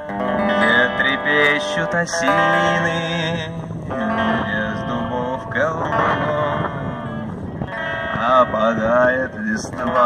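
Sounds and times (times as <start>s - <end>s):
electric guitar: 0.0s - 10.0s
man singing into a microphone: 0.3s - 7.4s, 8.0s - 10.0s.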